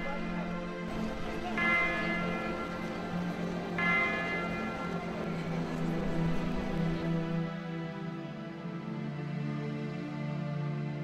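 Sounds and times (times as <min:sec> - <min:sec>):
bell ringing: 0:00.9 - 0:07.0.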